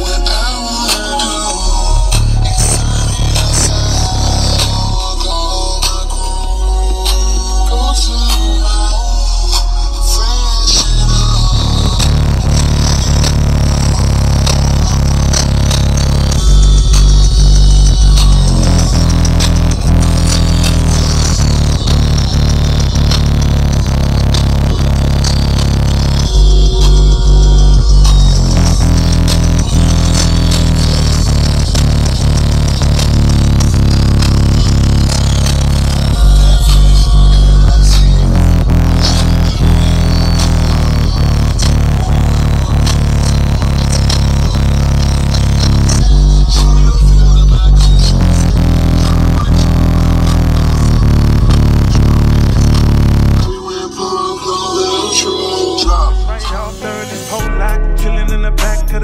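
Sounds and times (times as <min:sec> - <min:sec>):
bass-heavy music through subwoofer: 0:00.0 - 0:59.0.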